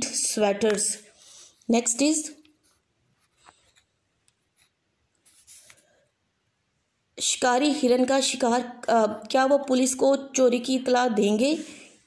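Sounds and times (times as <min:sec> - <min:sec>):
pen tip scraping paper: 0:04.5 - 0:05.9.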